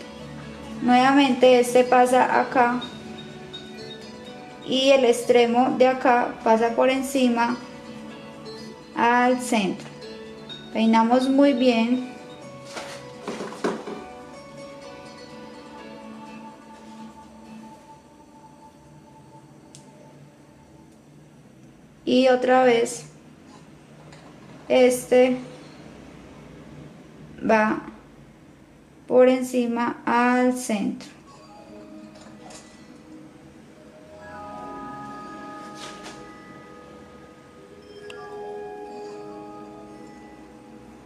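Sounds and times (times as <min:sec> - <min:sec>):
soft background music: 0:00.0 - 0:41.0
hair rustling: 0:35.4 - 0:36.7.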